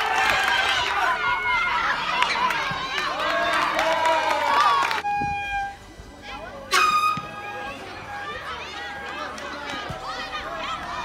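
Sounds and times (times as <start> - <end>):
quiet chatter: 4.8 - 11.0
horn toots: 6.7 - 8.4.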